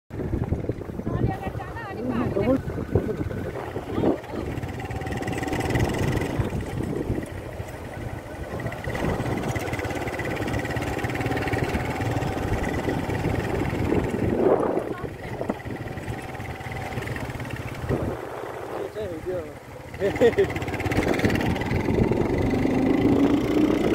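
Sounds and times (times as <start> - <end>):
motorcycle engine running: 0.1 - 23.9
road noise: 0.1 - 23.9
people talking: 1.0 - 5.1, 5.8 - 7.0, 14.4 - 17.0, 18.7 - 20.5.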